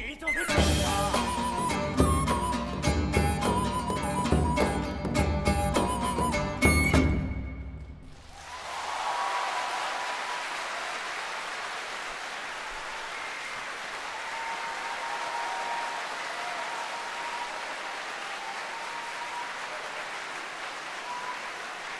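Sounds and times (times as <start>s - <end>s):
audience applauding: 8.0s - 21.9s.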